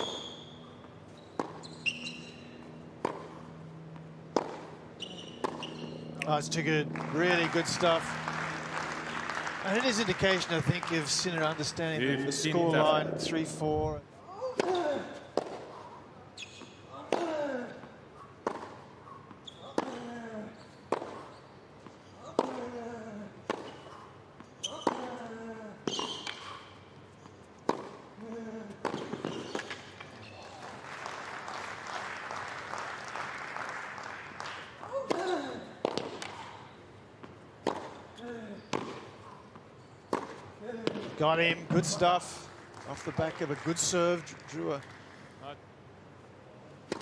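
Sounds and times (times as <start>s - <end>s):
ball bouncing on hard court: 0.0s - 3.4s, 4.3s - 6.3s, 18.4s - 18.8s, 27.6s - 28.0s, 28.8s - 30.0s, 37.2s - 38.0s, 40.0s - 42.0s
rackets striking tennis ball: 0.0s - 11.9s, 14.5s - 15.8s, 18.4s - 18.9s, 20.9s - 22.8s, 23.4s - 25.2s, 25.8s - 26.6s, 27.6s - 28.1s, 28.8s - 30.4s, 34.4s - 36.6s, 37.2s - 39.3s, 40.0s - 43.4s, 46.8s - 47.0s
scattered applause: 6.9s - 12.0s, 30.4s - 35.0s, 42.4s - 45.4s.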